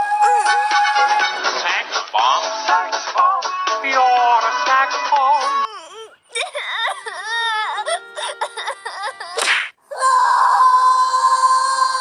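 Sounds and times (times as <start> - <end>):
music: 0.0 - 5.7
child crying and wailing: 5.4 - 12.0.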